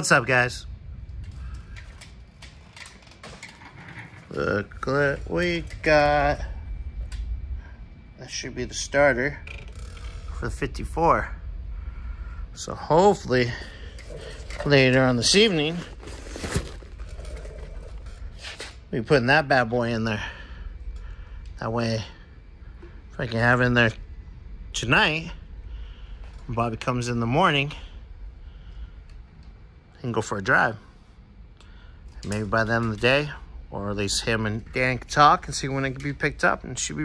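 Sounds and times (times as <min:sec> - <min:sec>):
low steady rumble: 0:00.0 - 0:37.0
workshop background hum: 0:00.0 - 0:37.0.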